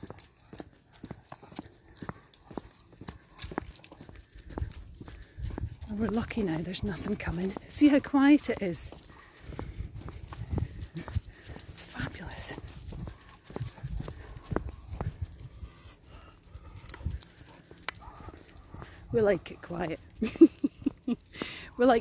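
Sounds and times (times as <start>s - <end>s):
footsteps on tarmac: 0.0s - 20.1s.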